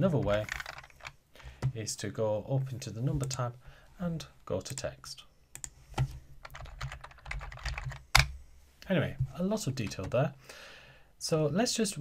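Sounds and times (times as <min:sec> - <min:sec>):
computer keyboard typing: 0:00.3 - 0:01.2, 0:06.4 - 0:08.3.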